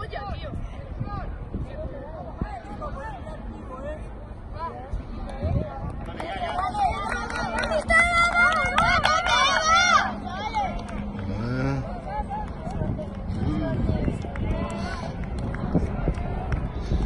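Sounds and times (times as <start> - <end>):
children chattering: 6.4 - 15.1
children shouting: 6.9 - 10.8
low rumble: 7.9 - 17.0.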